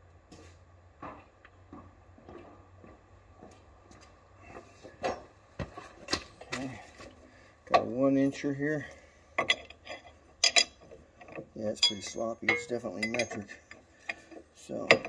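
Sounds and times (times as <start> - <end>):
hand tools clicking and clinking: 9.4 - 15.0.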